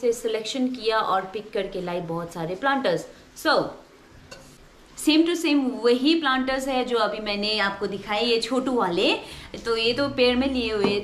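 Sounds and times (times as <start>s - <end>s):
woman speaking: 0.0s - 3.8s, 5.0s - 11.0s.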